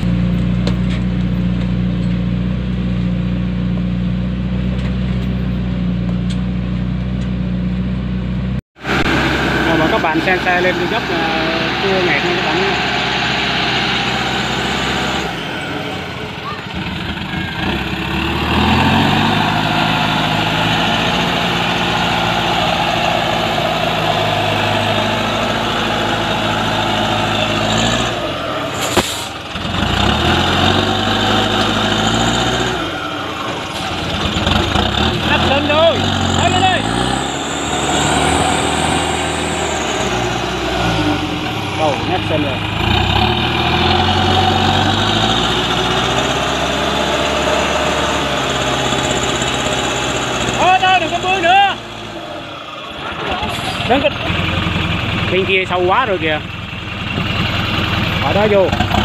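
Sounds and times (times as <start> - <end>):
truck engine labouring: 0.0 - 59.0.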